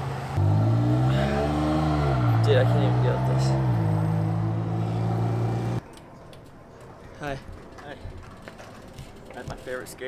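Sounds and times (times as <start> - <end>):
vehicle engine humming: 0.0 - 5.8.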